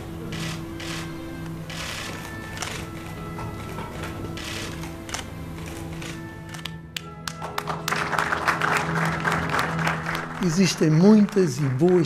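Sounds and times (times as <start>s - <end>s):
music with long held notes: 0.0s - 12.0s
crowd applauding: 7.2s - 12.0s.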